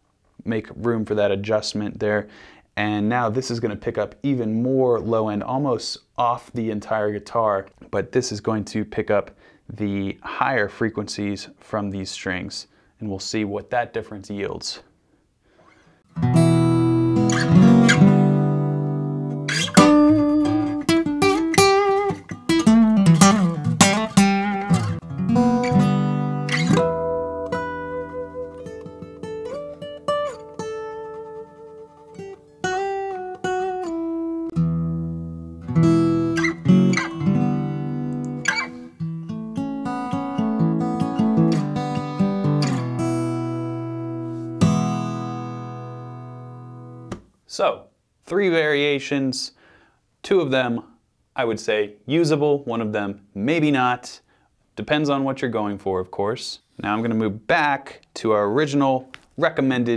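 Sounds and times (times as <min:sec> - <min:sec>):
acoustic guitar fingerstyle: 0:16.1 - 0:47.3.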